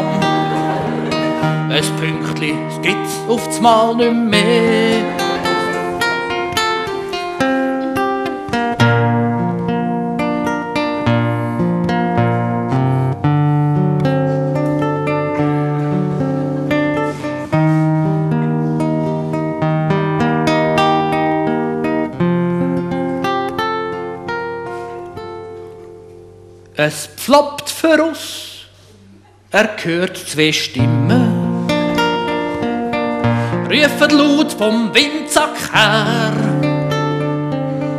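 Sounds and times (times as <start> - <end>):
solo acoustic guitar: 0.0 - 27.2, 27.8 - 37.9.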